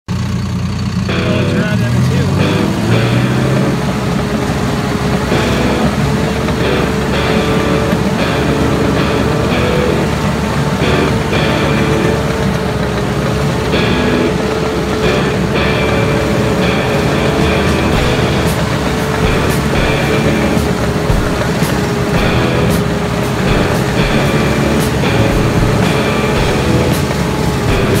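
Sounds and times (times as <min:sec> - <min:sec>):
diesel engine running hard: 0:00.1 - 0:28.0
steel tracks squeaking and clanking: 0:02.4 - 0:28.0.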